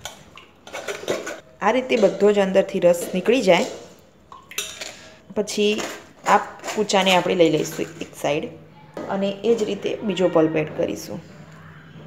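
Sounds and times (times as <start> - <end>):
spoon scraping metal strainer: 0.0 - 8.5.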